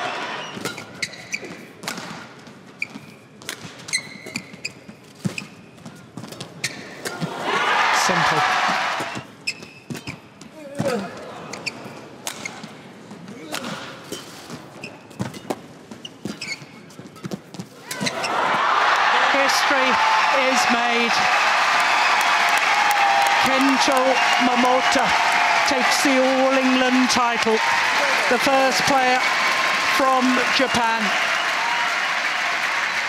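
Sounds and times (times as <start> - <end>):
crowd noise: 0.0 - 0.6, 7.0 - 9.2, 17.8 - 33.0
shoe squeaks on court: 0.4 - 1.8, 2.8 - 6.0, 6.6 - 7.0, 9.1 - 10.3, 11.5 - 12.7, 14.1 - 18.2
crowd roaring: 7.2 - 9.2, 17.9 - 33.0.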